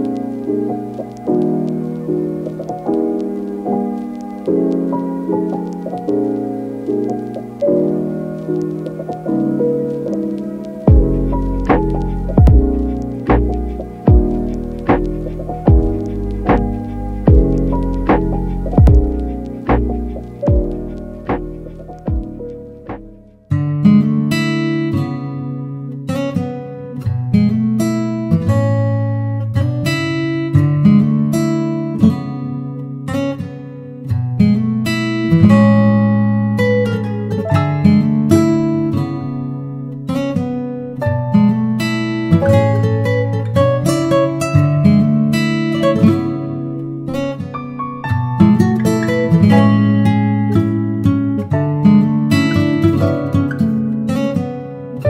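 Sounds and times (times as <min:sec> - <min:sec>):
acoustic guitar piece: 0:00.0 - 0:55.0.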